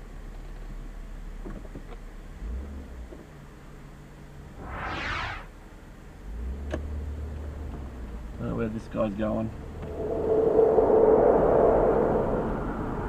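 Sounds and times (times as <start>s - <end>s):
rush of noise: 4.6s - 5.6s, 9.6s - 13.0s.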